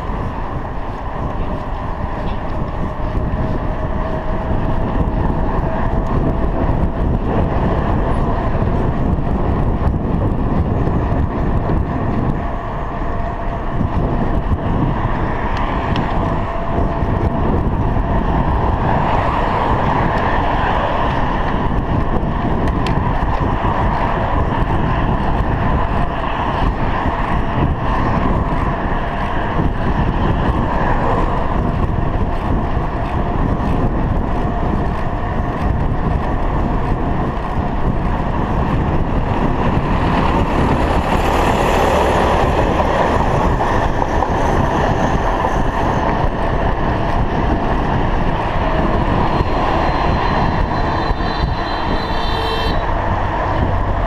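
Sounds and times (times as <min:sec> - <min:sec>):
tyre noise on asphalt: 0:00.0 - 0:54.0
wind rumbling over camera: 0:00.0 - 0:54.0.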